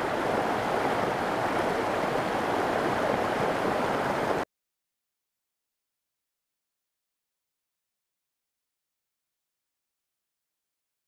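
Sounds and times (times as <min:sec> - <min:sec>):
stream rushing over rocks: 0:00.0 - 0:04.4.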